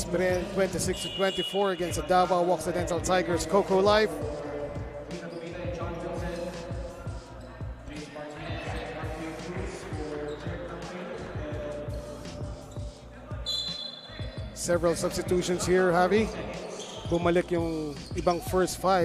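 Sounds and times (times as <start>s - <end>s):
voices in a hall: 0.0s - 19.0s
referee's whistle: 0.8s - 2.4s, 13.4s - 14.6s, 16.7s - 17.3s.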